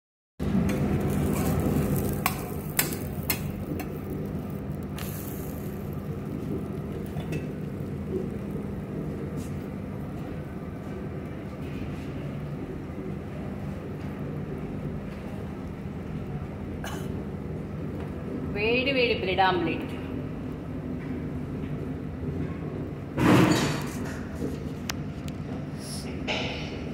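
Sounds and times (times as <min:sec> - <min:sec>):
steady low hum: 0:00.4 - 0:26.9.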